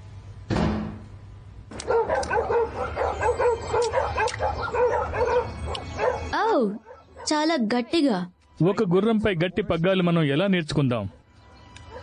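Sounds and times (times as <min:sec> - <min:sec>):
dogs barking and yapping: 0:01.7 - 0:08.0, 0:11.0 - 0:12.0.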